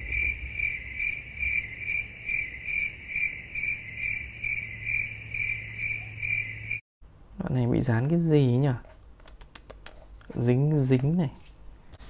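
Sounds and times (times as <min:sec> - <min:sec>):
cricket chirping: 0:00.0 - 0:06.8.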